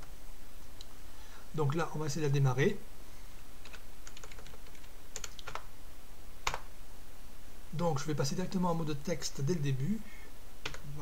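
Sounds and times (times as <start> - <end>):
computer keyboard keys clicking: 3.6 - 5.7.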